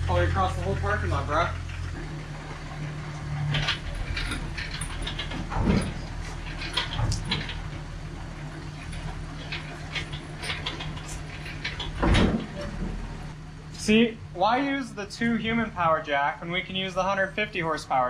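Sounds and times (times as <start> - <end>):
engine idling: 0.0 - 18.0
metallic clanks and knocks: 1.7 - 13.4.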